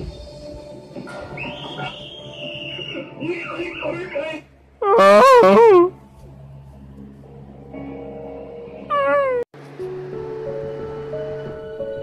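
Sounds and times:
soft music with held notes: 5.0s - 12.0s
cat meowing: 8.9s - 9.5s.

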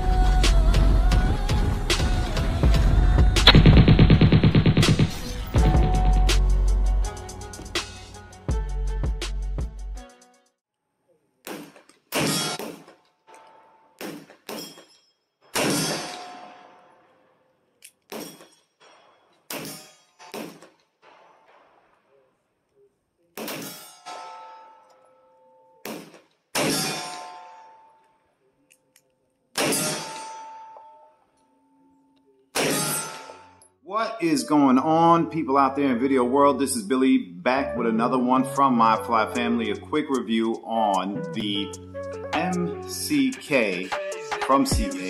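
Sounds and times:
pistol shots: 3.4s - 6.5s.

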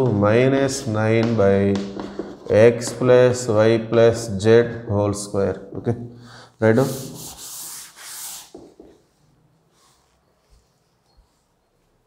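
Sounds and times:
eraser rasping on blackboard: 6.8s - 9.0s.

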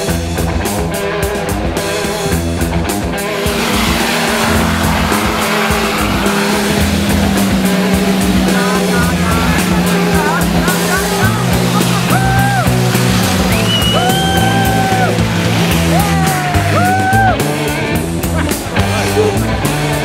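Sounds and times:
engine running hard: 0.0s - 20.0s
music: 0.0s - 20.0s
vehicle ploughing through mud: 2.3s - 20.0s.

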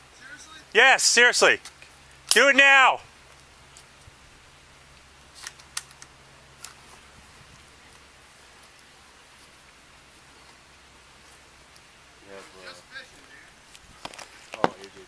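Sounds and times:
low hum and hiss: 0.0s - 15.0s.

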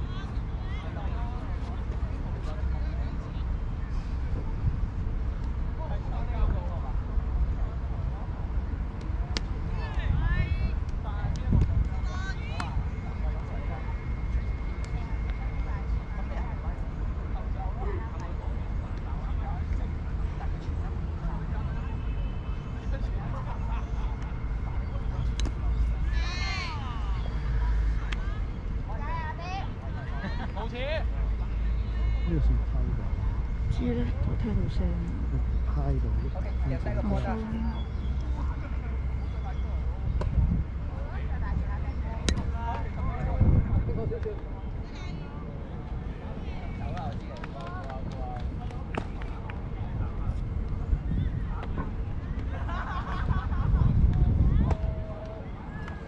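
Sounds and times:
low outdoor rumble: 0.0s - 56.0s.

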